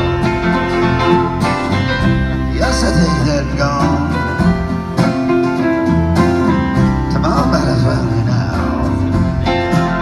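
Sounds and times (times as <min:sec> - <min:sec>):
distant live band playing: 0:00.0 - 0:10.0
plucked guitar notes: 0:00.0 - 0:10.0.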